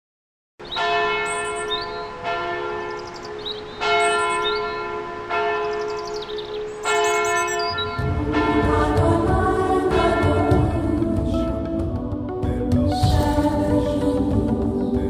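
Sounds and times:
church bell tolling: 0.6s - 9.3s, 9.9s - 10.8s.

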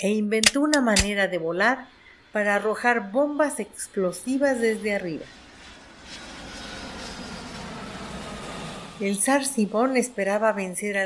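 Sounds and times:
narration voice: 0.0s - 1.8s, 2.4s - 5.3s
aircraft fly-by drone: 1.3s - 11.0s.

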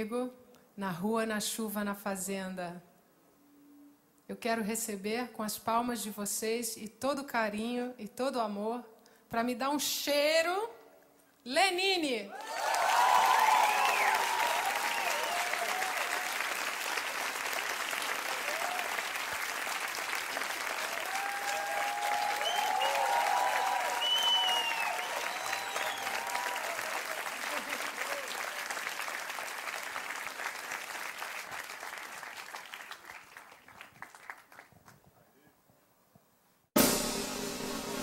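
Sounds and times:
scattered cheers: 12.3s - 16.6s, 18.2s - 19.2s, 20.8s - 28.7s
audience applauding: 12.3s - 35.0s.

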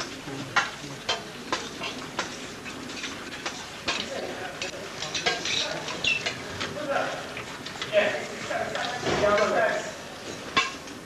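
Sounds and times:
spoons clinking on plates: 0.0s - 6.5s, 10.2s - 11.0s.

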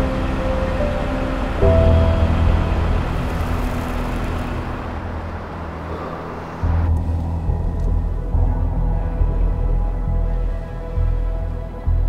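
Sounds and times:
street hiss: 0.0s - 8.0s
car engine rumble: 0.0s - 11.6s.

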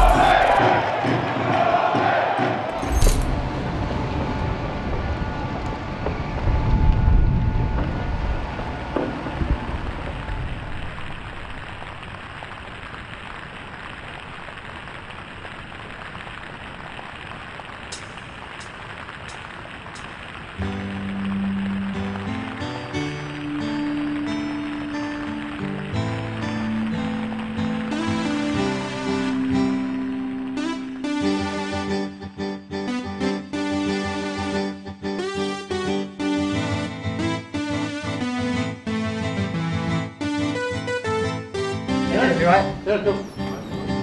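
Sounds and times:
background music: 0.0s - 4.3s, 20.6s - 44.0s
steady rain falling: 2.8s - 44.0s.

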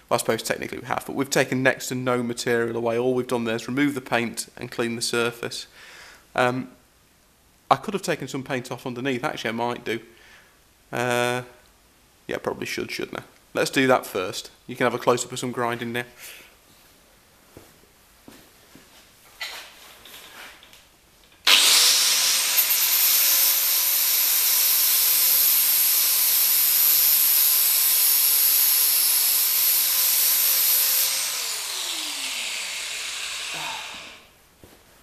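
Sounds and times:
angle grinder grinding metal: 21.4s - 34.4s.

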